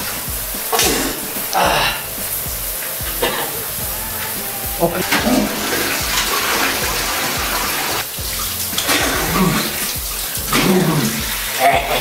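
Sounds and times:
shower water spraying: 0.0 - 12.0.

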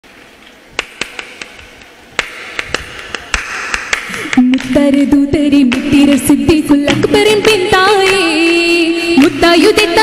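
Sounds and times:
sharp hand claps: 0.8 - 1.6, 2.2 - 6.3, 6.9 - 9.4.

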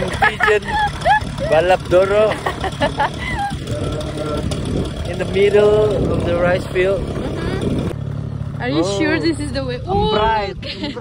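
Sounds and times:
person laughing: 0.0 - 4.2, 10.6 - 11.0
motorcycle engine running: 0.0 - 11.0.

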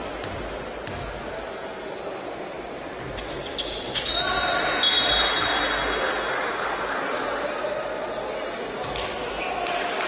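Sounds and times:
players' voices in hall: 0.0 - 10.0.

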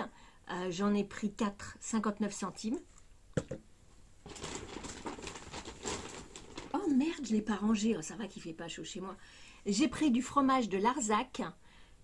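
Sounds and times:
plastic bag rustling: 4.2 - 7.5.

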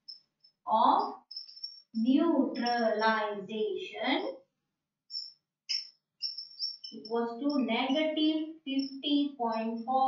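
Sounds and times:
marker squeaking on whiteboard: 0.0 - 3.3, 5.1 - 10.0.

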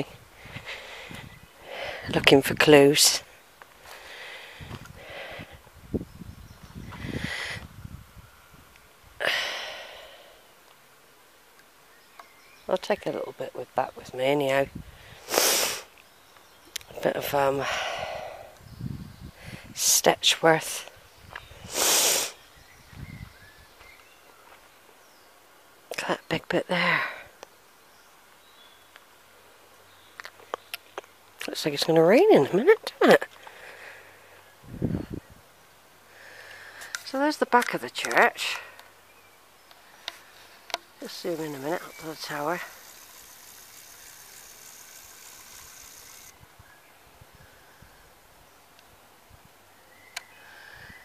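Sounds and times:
rustling hiss: 0.0 - 25.9, 38.1 - 51.0
faint bird chirps: 22.3 - 25.4, 49.7 - 51.0.

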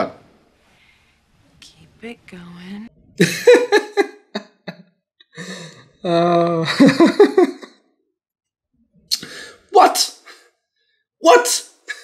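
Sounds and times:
man laughing: 3.2 - 4.8, 6.1 - 7.7.

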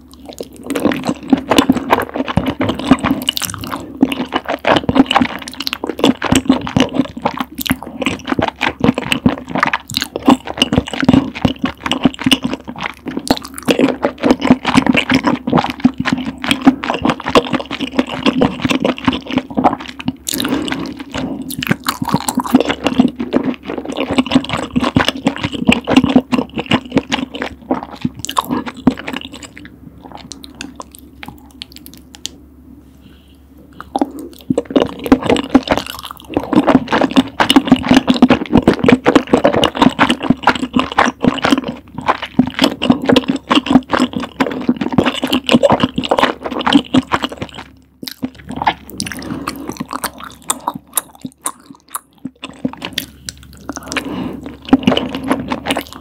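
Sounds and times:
wet sticky chewing: 0.0 - 32.4, 33.7 - 56.0
slurping noodles: 48.2 - 50.8, 52.5 - 56.0.

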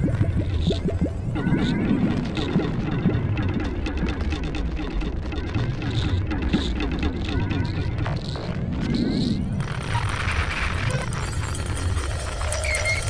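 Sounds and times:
low synthesizer rumble: 0.0 - 9.9.

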